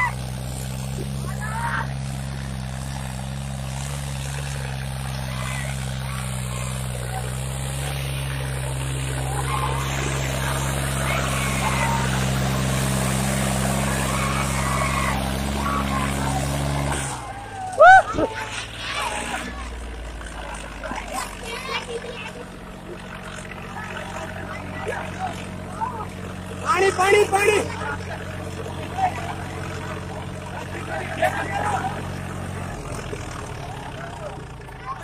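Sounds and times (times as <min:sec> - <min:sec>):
crowd shouting: 0:00.0 - 0:35.0
tractor diesel engine labouring: 0:00.0 - 0:35.0.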